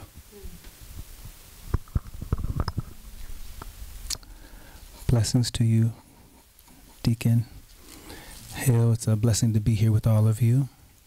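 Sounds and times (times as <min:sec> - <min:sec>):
microphone handling thumps: 0:00.5 - 0:04.3.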